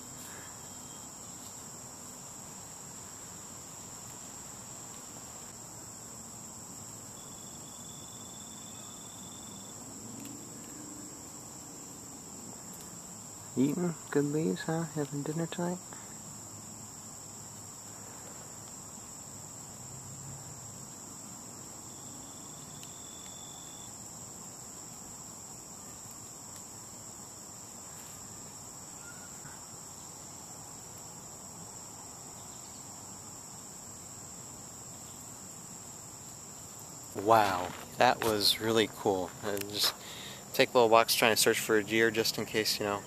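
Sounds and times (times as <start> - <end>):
insects chorus: 0.0 - 43.0.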